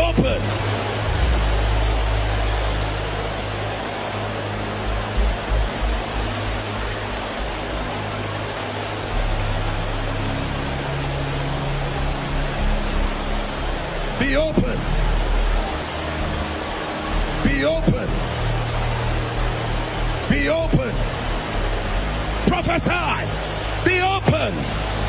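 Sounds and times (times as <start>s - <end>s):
congregation praying aloud: 0.0s - 0.6s, 14.2s - 15.0s, 17.3s - 18.3s, 20.2s - 21.1s, 22.4s - 24.8s
low keyboard chords: 0.0s - 25.0s.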